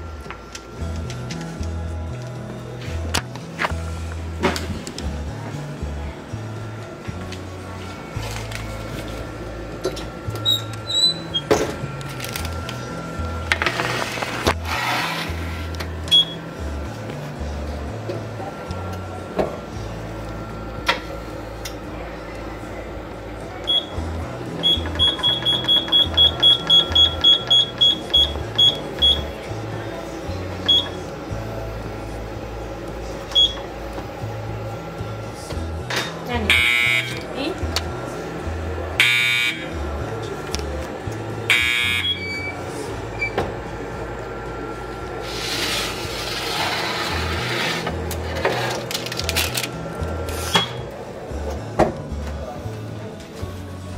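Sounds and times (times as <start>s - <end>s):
background music: 0.0s - 53.9s
oven buzzing: 0.0s - 53.9s
oven control panel beeping: 4.5s - 14.7s, 15.6s - 52.6s.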